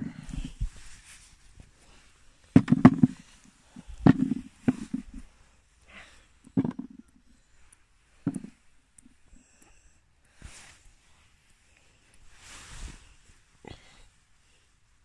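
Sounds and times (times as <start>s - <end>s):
knocks and soft thumps: 2.6s - 5.2s, 6.6s - 7.0s, 8.3s - 8.5s.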